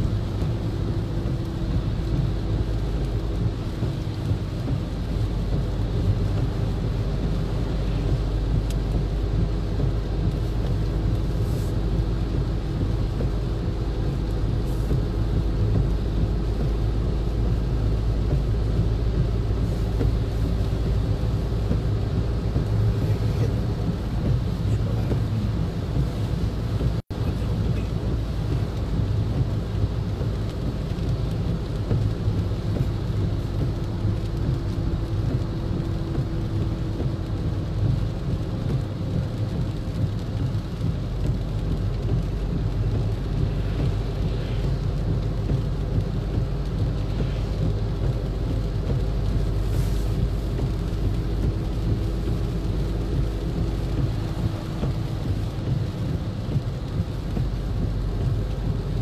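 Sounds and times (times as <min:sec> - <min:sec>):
rain and spray on car: 0:00.0 - 0:59.0
road and tyre noise: 0:00.0 - 0:59.0.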